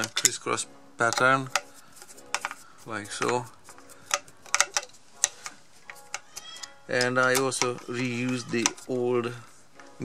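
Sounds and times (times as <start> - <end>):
screwdriver clicking on screws: 0.0 - 0.4, 1.0 - 9.0.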